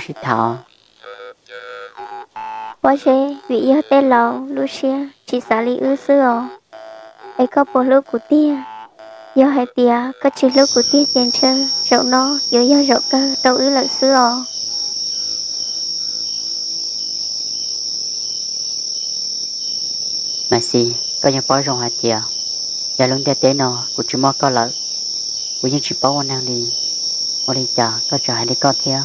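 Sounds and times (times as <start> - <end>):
crickets trilling: 0.0 - 29.0.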